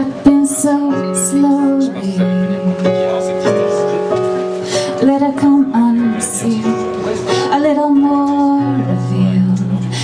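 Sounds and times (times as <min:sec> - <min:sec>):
piano: 0:00.0 - 0:10.0.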